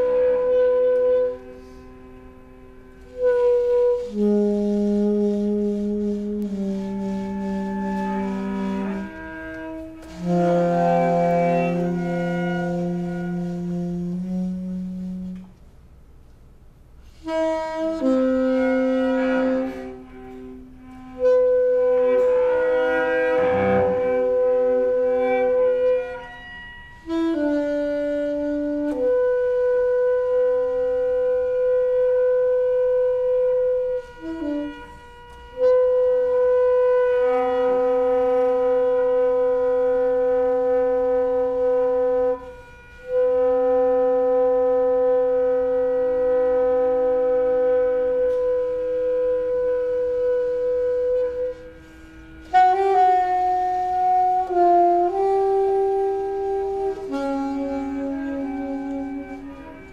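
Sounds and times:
bowed cello tones: 0.0s - 15.6s, 17.3s - 59.9s
alto saxophone long notes: 0.0s - 15.7s, 17.0s - 59.9s.

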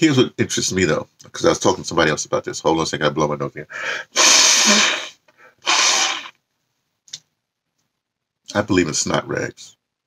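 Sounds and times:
man blowing nose: 4.0s - 6.3s.

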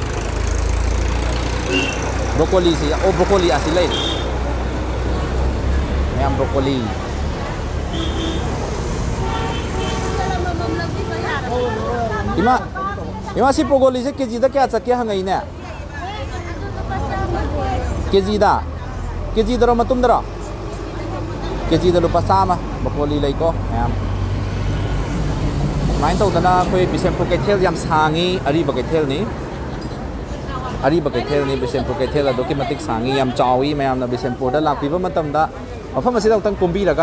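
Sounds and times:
traffic rumble: 0.0s - 37.0s
voices of vendors and shoppers: 0.0s - 37.0s.

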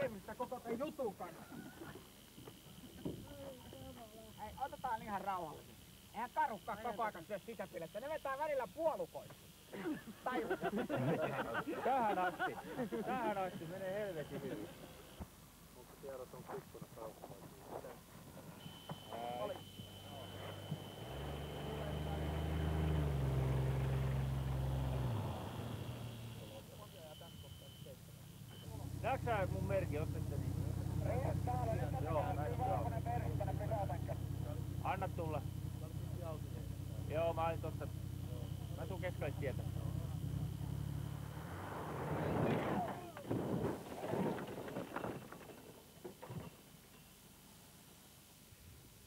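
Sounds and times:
car engine running: 19.2s - 26.9s, 28.0s - 42.5s
rush of gravel and dust: 41.5s - 45.8s
car landing hard on dirt: 41.6s - 46.7s
sharp thuds and rattles: 42.2s - 46.6s.

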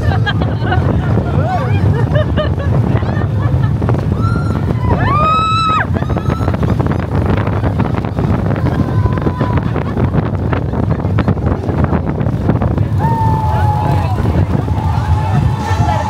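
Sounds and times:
roller coaster rattling on track: 0.0s - 16.0s
wind rushing over microphone: 0.0s - 16.0s.

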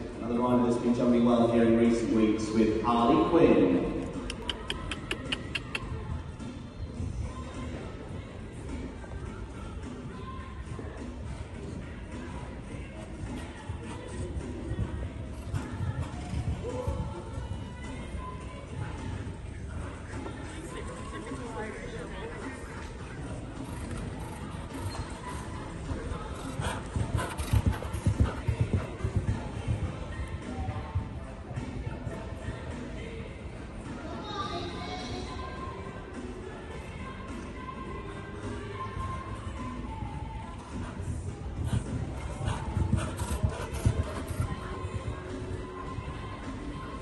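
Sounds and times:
faint background music: 0.0s - 47.0s
horse hooves cantering on sand: 4.0s - 21.8s, 22.6s - 32.8s, 39.0s - 47.0s
horse hooves thudding on sand: 23.7s - 31.2s, 40.5s - 46.7s.

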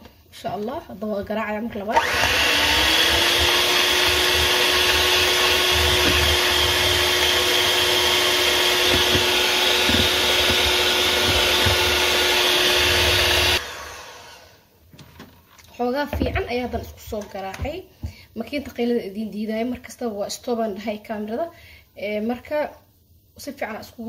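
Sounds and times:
electric hand mixer running: 1.9s - 14.6s
beaters whisking in glass bowl: 2.0s - 13.6s.

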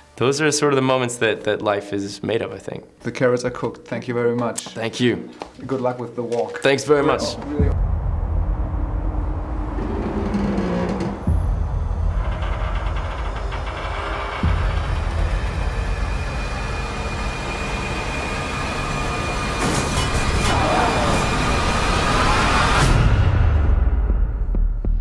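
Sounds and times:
deep heavy rumble: 7.1s - 19.6s.

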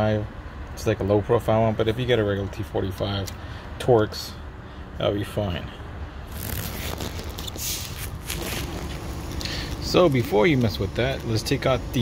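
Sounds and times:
steady low hum: 1.6s - 12.0s.

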